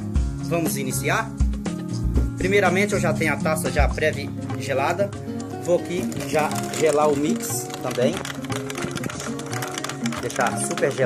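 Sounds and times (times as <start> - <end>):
background music: 0.0 - 11.0
ice cubes clicking in glass: 6.0 - 11.0.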